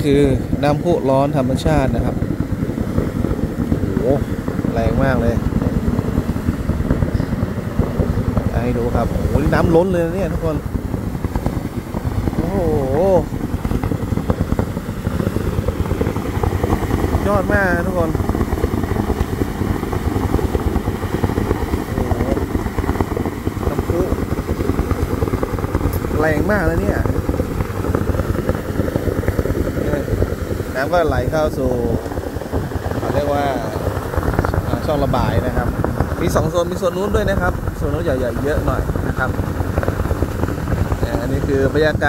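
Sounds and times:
geyser water rushing and splashing: 0.0s - 42.0s.

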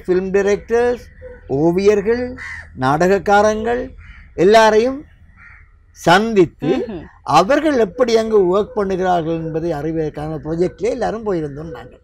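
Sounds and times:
man speaking: 0.0s - 5.1s, 6.0s - 12.0s
crow cawing faintly: 0.2s - 6.4s, 7.3s - 12.0s.

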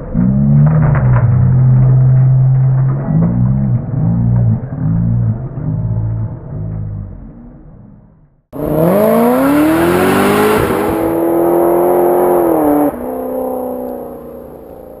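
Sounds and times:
motor engine revving: 8.6s - 15.0s.

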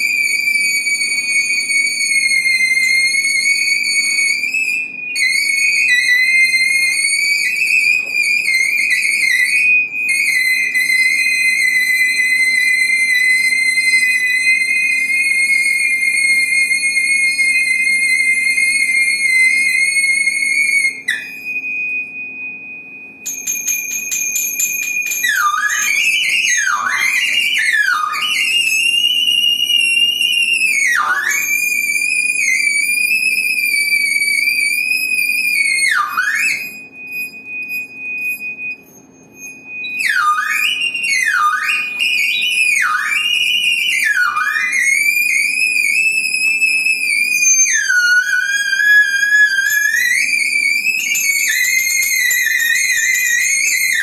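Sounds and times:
percussion: 0.0s - 54.0s
saxophone squealing: 0.0s - 54.0s.

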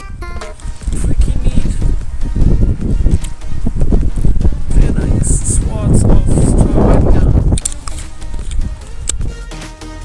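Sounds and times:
wind buffeting microphone: 0.0s - 9.3s
soft music: 0.0s - 10.0s.

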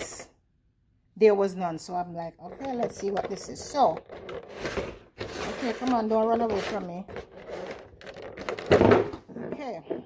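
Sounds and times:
plastic packaging scraping and rattling: 2.6s - 9.4s.

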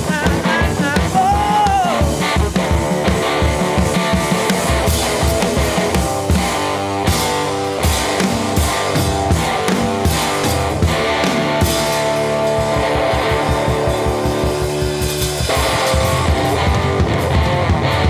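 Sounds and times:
drum kit beating fast: 0.0s - 18.0s
electric guitar chords: 0.0s - 18.0s.

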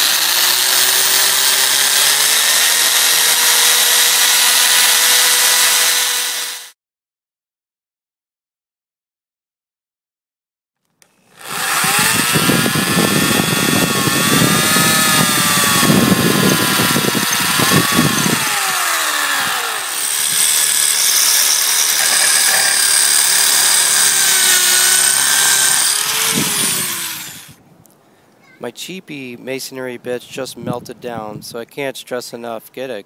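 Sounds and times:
electric drill boring into concrete: 0.0s - 6.8s, 11.0s - 27.6s.

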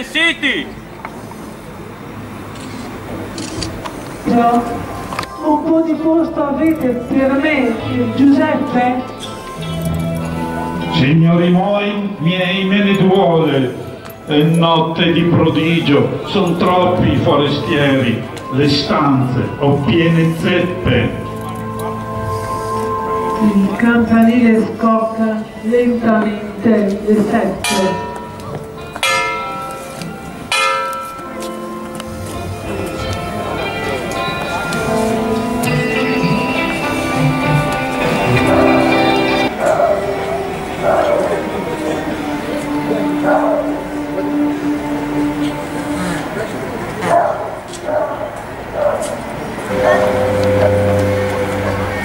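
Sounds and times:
crowd voices: 0.0s - 52.0s
sustained music chord: 4.3s - 26.8s, 27.6s - 47.0s, 49.6s - 52.0s
church bell tolling: 4.3s - 45.7s, 47.9s - 52.0s.

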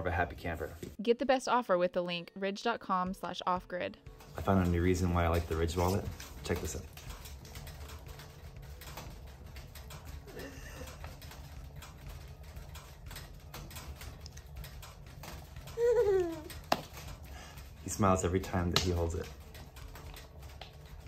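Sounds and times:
infant cooing: 15.8s - 16.6s.

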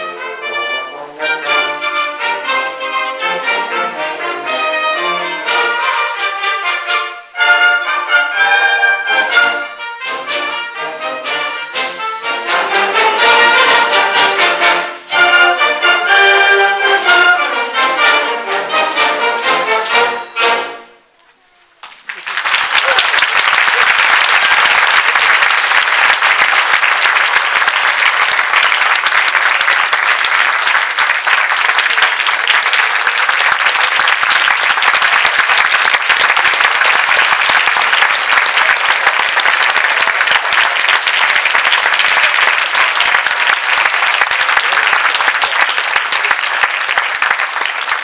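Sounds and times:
audience applauding: 21.8s - 48.0s.

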